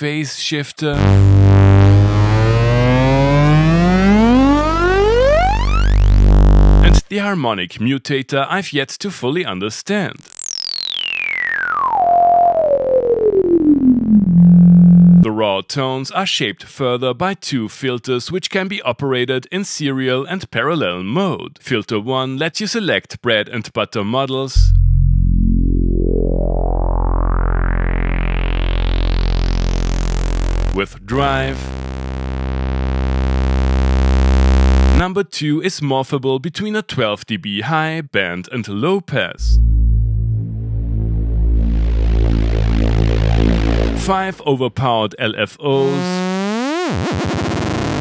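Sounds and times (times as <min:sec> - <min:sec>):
synthesizer whistling tone gliding down: 0:01.0 - 0:06.4, 0:10.2 - 0:15.2, 0:24.6 - 0:29.8, 0:39.4 - 0:44.2.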